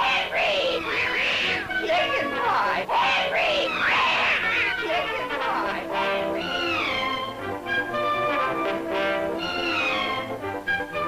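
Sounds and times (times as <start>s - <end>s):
cartoon character yowls: 0.0s - 1.8s, 2.9s - 5.2s, 6.3s - 7.3s, 9.4s - 10.3s
orchestral score: 0.0s - 11.0s.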